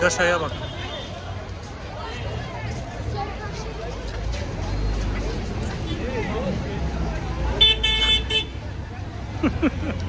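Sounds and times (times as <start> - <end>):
vehicle horn honking: 7.6 - 8.6.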